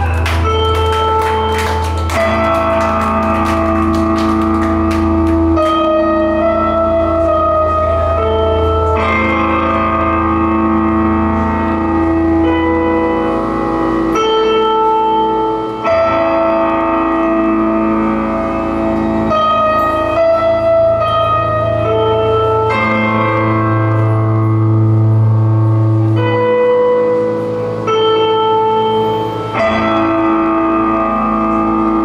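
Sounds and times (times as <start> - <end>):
band playing heavy electric guitars: 0.0 - 32.0.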